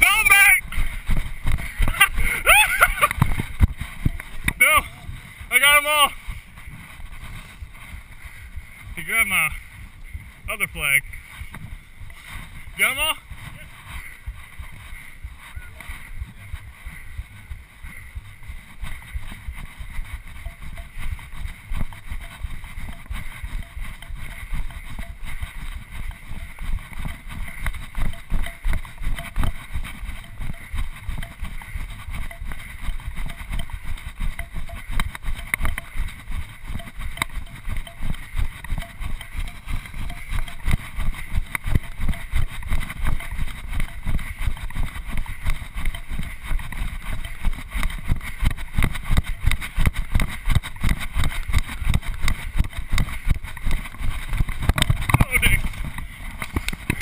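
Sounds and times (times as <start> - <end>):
running footfalls on dirt: 0.0 - 57.0.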